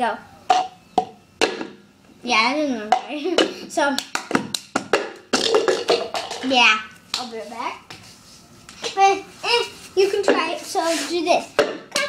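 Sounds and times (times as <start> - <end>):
hand claps: 4.0 - 5.2
plastic cup knocking on table: 4.2 - 6.5.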